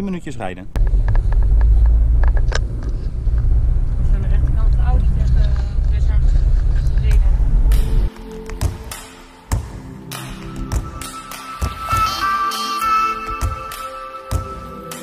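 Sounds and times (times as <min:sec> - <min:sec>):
car rumble inside cabin: 0:00.8 - 0:08.1
background music: 0:04.1 - 0:15.0.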